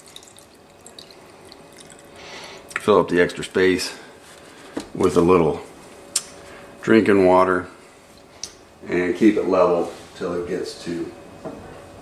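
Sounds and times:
water trickling into a mold: 0:00.0 - 0:02.9.

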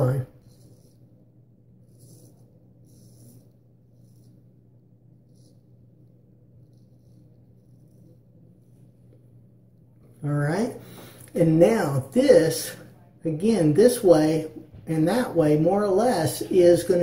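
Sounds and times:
razor scraping stubble: 0:00.0 - 0:09.2
low steady hum: 0:00.0 - 0:17.0.

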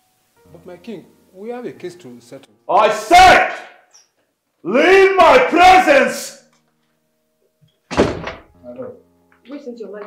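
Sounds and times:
door banging: 0:07.9 - 0:08.6.

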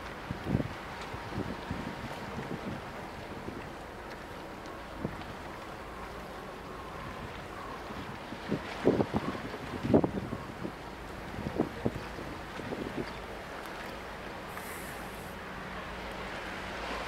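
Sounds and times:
wind rushing over microphone: 0:00.0 - 0:03.6, 0:07.0 - 0:13.2.

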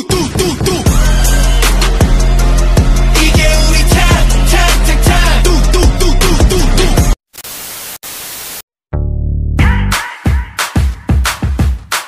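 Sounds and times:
music: 0:00.0 - 0:07.2, 0:08.9 - 0:12.0
static hiss: 0:07.3 - 0:08.6.

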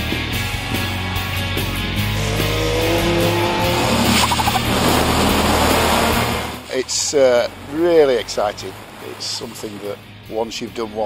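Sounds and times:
racing car engine running: 0:00.2 - 0:09.0.

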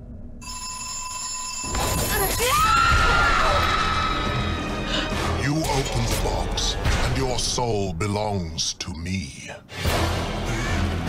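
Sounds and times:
high ringing tone: 0:00.4 - 0:02.7.

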